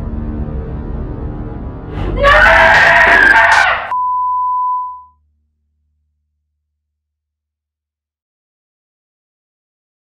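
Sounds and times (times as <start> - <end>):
dark trailer music: 0.0 - 4.0
person screaming: 2.0 - 3.9
high beep tone: 3.9 - 5.2.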